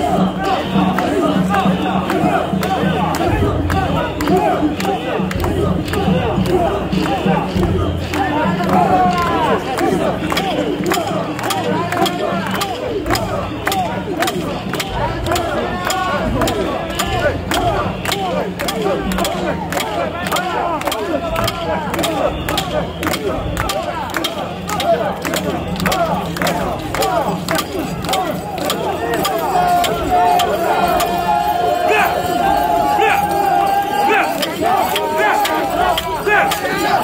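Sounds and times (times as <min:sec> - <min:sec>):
crowd shouting a chant: 0:00.0 - 0:37.0
sharp clacks: 0:00.0 - 0:37.0.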